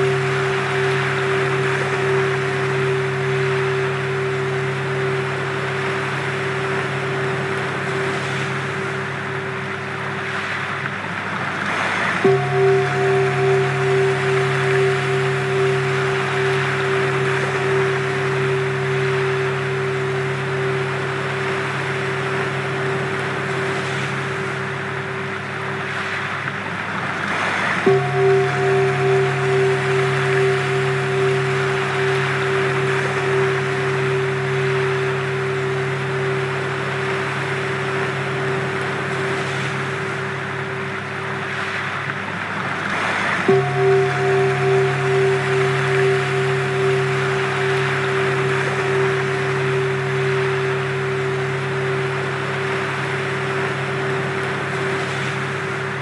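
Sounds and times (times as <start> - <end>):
pulsing hum tone: 0.0 - 56.0
sustained steady tones: 0.0 - 56.0.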